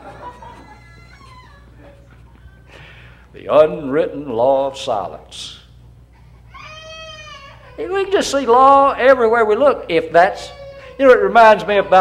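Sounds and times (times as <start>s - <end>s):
congregation chuckling: 0.0s - 2.8s
low electrical hum: 0.0s - 12.0s.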